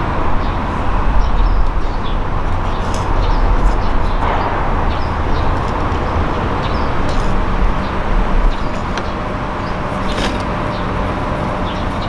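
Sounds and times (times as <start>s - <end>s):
low rumble: 0.0s - 10.1s.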